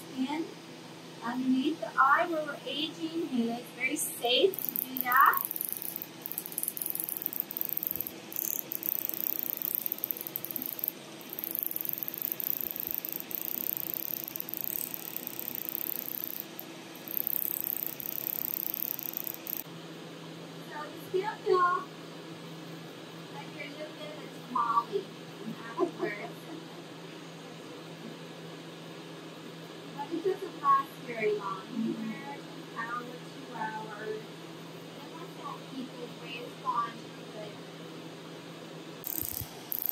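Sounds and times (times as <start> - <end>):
faint machine hum: 0.0 - 39.9
laser handpiece hissing: 4.4 - 19.7, 39.0 - 39.9.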